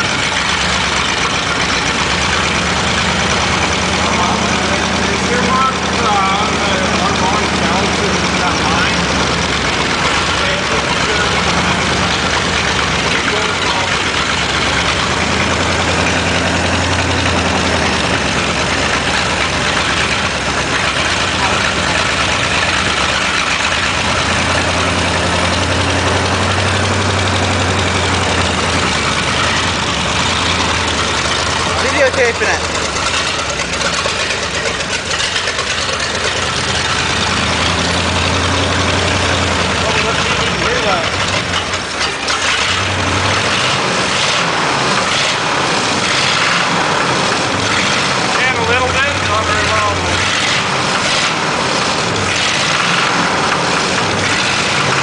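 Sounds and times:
car engine revving with loud exhaust: 0:00.0 - 0:55.0.

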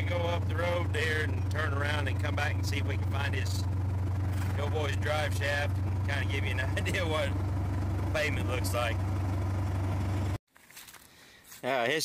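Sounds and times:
engine and road drone in truck cab: 0:00.0 - 0:10.4.

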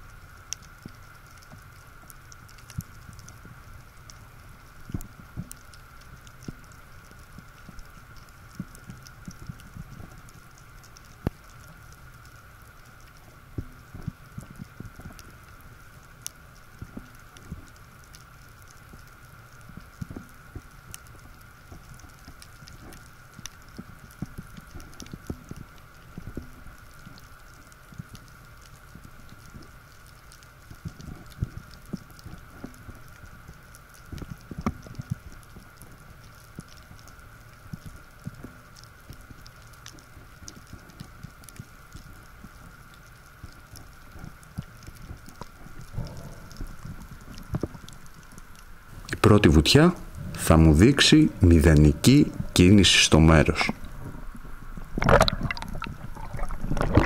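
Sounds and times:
underwater clicks and crackles: 0:00.0 - 0:57.0
steady high hum: 0:41.7 - 0:57.0
low thumps of water movement: 0:53.5 - 0:57.0.

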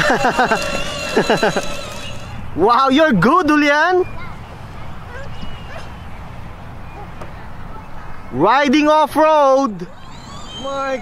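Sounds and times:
faint distant calls: 0:00.0 - 0:11.0.

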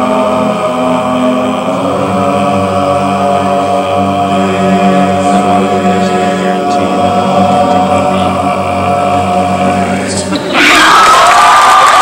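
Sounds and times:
a cappella group holding chord: 0:00.0 - 0:10.9.

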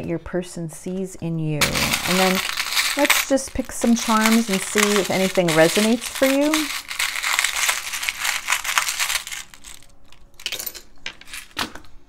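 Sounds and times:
charms clinking in a wooden tray: 0:01.6 - 0:11.6.

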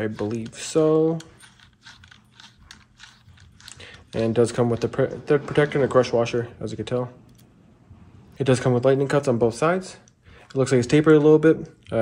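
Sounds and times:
pistol handling clicks and scrapes: 0:00.0 - 0:05.0.

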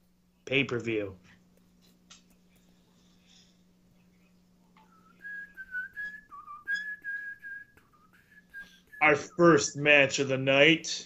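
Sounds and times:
faint low hum: 0:00.0 - 0:11.0
person whistling a tune: 0:04.8 - 0:09.4.

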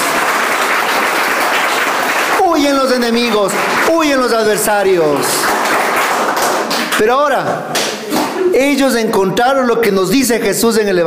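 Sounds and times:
congregation clapping: 0:00.0 - 0:08.4
preacher speaking: 0:02.3 - 0:05.5, 0:06.9 - 0:07.7, 0:08.4 - 0:11.0.

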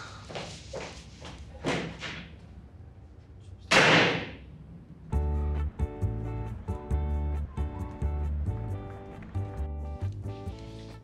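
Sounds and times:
door slamming shut: 0:03.7 - 0:04.4.

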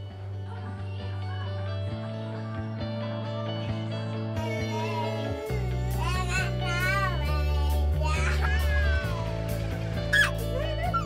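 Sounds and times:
steady bass notes: 0:04.0 - 0:11.0
high child-like voice singing: 0:04.4 - 0:09.3.

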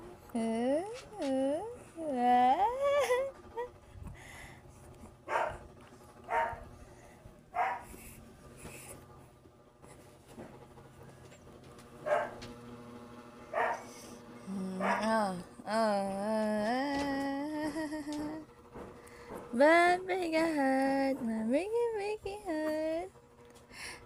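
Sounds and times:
person humming a tune: 0:00.0 - 0:03.8, 0:14.4 - 0:18.5, 0:19.6 - 0:23.1
dog barking: 0:05.3 - 0:05.6, 0:06.3 - 0:06.7, 0:07.5 - 0:07.9, 0:12.0 - 0:12.4, 0:13.5 - 0:13.9, 0:14.8 - 0:15.1.

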